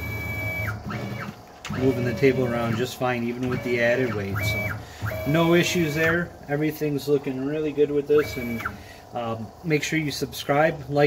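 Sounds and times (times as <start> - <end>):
stepper motor whine: 0.0 - 10.2.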